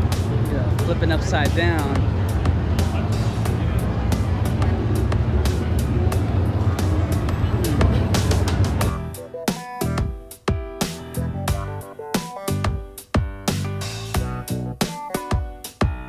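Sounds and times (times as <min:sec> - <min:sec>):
music with steady beat: 0:00.0 - 0:16.0
crowd din in a hall: 0:01.9 - 0:09.2.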